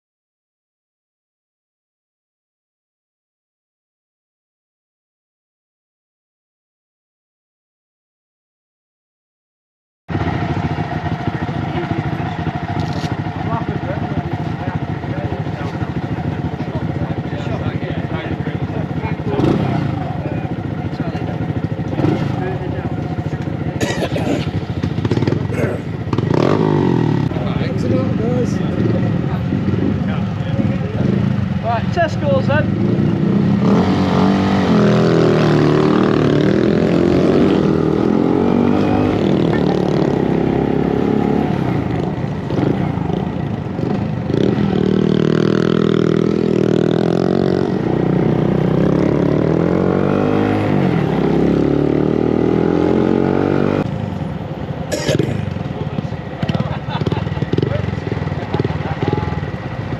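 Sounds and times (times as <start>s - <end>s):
small motorcycle engines idling: 10.1s - 33.6s, 35.8s - 52.3s, 53.8s - 59.9s
motorcycle accelerating along road: 10.1s - 59.9s.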